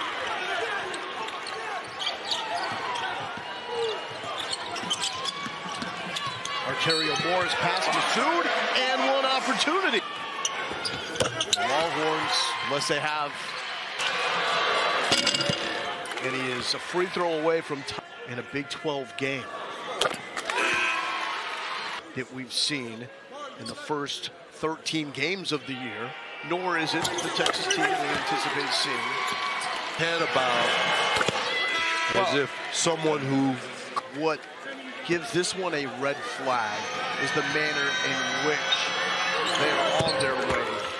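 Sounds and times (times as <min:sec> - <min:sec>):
crowd noise: 0:00.0 - 0:40.9
sneaker squeaks: 0:00.4 - 0:07.4, 0:10.4 - 0:11.6, 0:27.0 - 0:28.7, 0:39.4 - 0:40.8.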